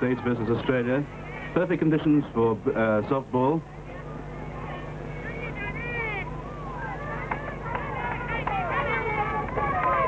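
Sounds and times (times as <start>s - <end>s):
shrill voices shouting: 3.8s - 10.0s.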